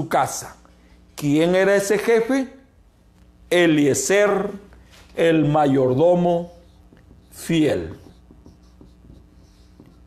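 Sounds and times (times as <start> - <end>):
marker scratching on whiteboard: 5.9 - 10.0.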